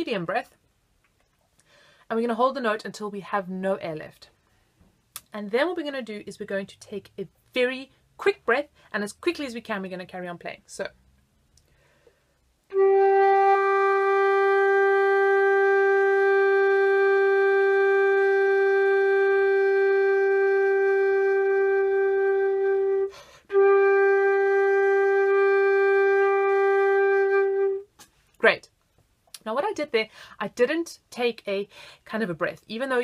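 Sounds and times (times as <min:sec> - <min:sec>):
sharp in-breath: 0:01.6 - 0:02.1, 0:11.7 - 0:12.4, 0:23.1 - 0:23.5, 0:31.7 - 0:32.0
flute holding long note: 0:12.7 - 0:27.9.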